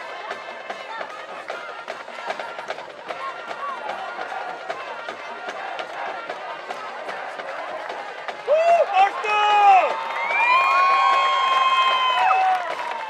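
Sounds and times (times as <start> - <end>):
crowd shouting and cheering: 0.0 - 13.0
marching band with drums: 0.0 - 13.0.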